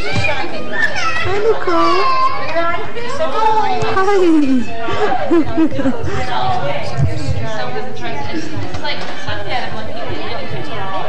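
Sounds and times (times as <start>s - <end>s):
children's high-pitched calls: 0.0s - 2.6s
children chattering: 0.0s - 11.0s
adult calling out: 4.0s - 4.7s
adult laughing: 4.0s - 6.3s.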